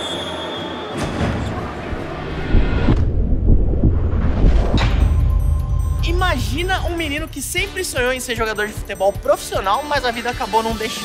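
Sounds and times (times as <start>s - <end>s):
deep bass rumble: 1.6s - 8.6s.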